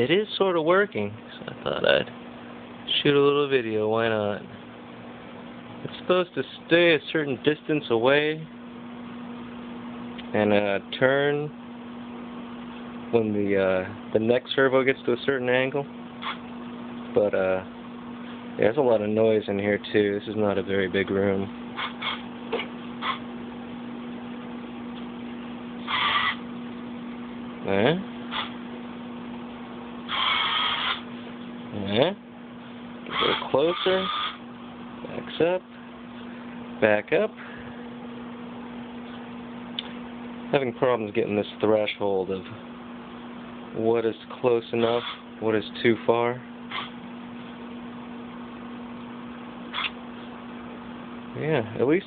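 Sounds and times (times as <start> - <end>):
steady low hum: 0.0 - 52.0
small gear motors whining: 25.8 - 26.4, 30.1 - 31.1, 33.1 - 34.4, 44.8 - 45.2.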